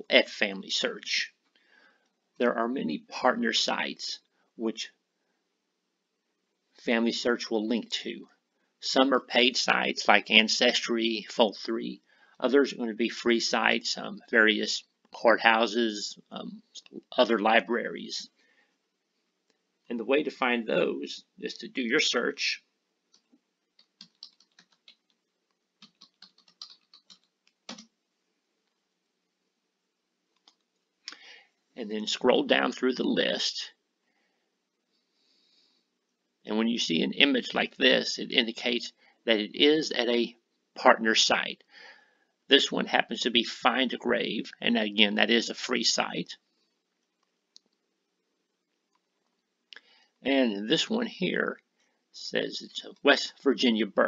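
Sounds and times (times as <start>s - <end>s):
faint keyboard typing: 23.0s - 28.0s, 30.3s - 31.4s, 48.6s - 49.9s.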